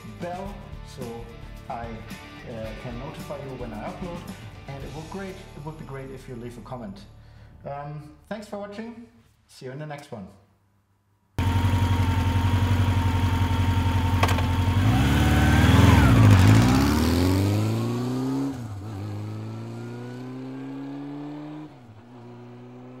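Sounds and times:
motorcycle engine revving and accelerating: 0:11.4 - 0:23.0.

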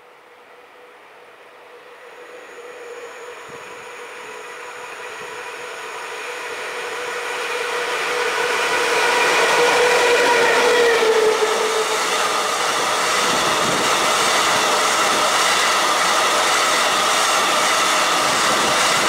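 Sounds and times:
electric locomotive whine: 0:00.0 - 0:19.0
train wagons rumbling and clattering: 0:06.8 - 0:19.0.

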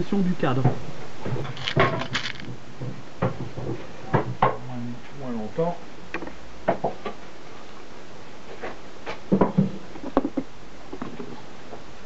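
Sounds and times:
wooden battens and metal knocking: 0:00.6 - 0:04.5.

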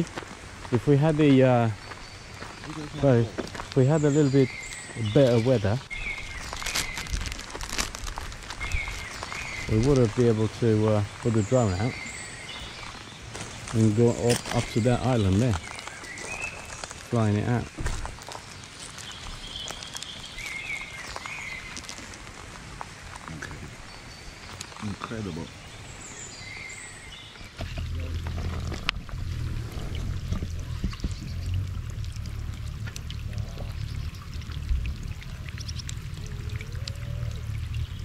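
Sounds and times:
soft ticks of raindrops: 0:00.0 - 0:25.8, 0:27.4 - 0:38.0
light rain hiss: 0:00.0 - 0:38.0
birds calling in whistled phrases: 0:01.6 - 0:07.4, 0:08.5 - 0:17.9, 0:18.8 - 0:21.9, 0:23.8 - 0:27.8
plastic bag crinkling: 0:06.0 - 0:10.2.

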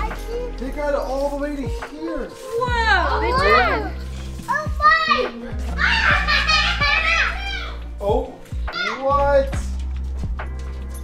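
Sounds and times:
low background music: 0:00.0 - 0:11.0
children and adults exclaiming: 0:02.7 - 0:08.0, 0:08.7 - 0:09.3.

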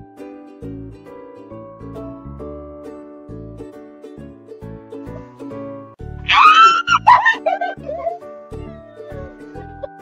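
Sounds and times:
background music with plucked strings: 0:00.0 - 0:10.0
woman squealing: 0:06.3 - 0:08.3.

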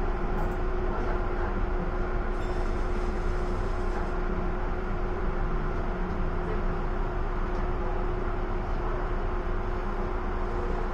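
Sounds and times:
steady hum: 0:00.0 - 0:10.9.

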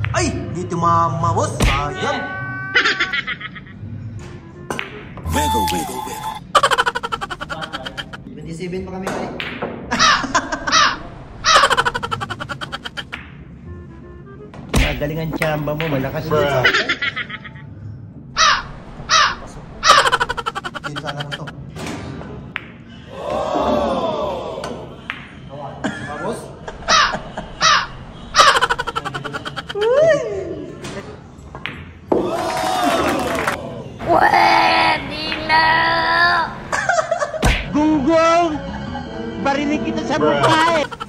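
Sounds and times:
men shouting and calling: 0:05.3 - 0:06.4.

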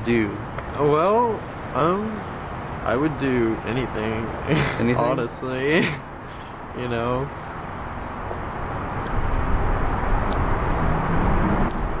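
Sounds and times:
low rumble of distant traffic: 0:00.0 - 0:12.0.

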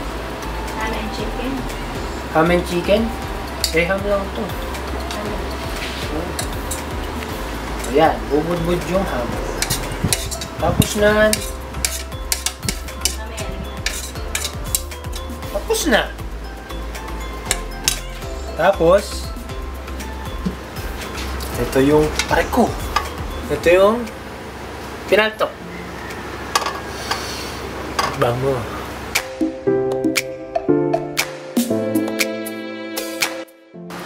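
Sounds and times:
steady low hum: 0:00.0 - 0:29.8
spoon scraping a plate: 0:09.6 - 0:10.5, 0:11.3 - 0:13.2, 0:13.8 - 0:14.9, 0:26.6 - 0:27.6
metal pot lid clinking: 0:09.6 - 0:13.2, 0:13.8 - 0:15.0.

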